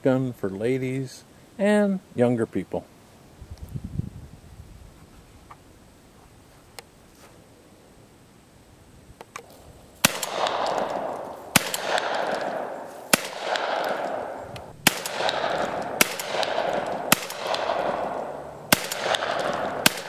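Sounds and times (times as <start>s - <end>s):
shotgun shots with echo: 10.0s - 20.0s.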